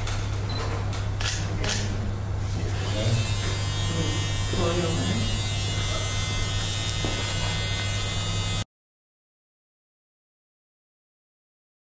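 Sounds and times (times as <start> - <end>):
electric hair clippers buzzing: 2.6 - 8.7.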